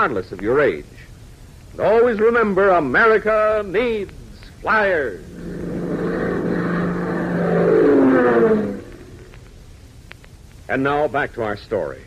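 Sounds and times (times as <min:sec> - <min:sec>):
airplane engine drone: 0:05.0 - 0:09.8.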